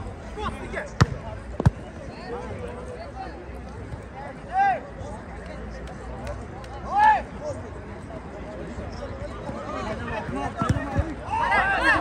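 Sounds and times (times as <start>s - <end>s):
spectators chatting: 0.0s - 12.0s
football kick thuds: 1.0s - 1.9s, 10.3s - 11.2s.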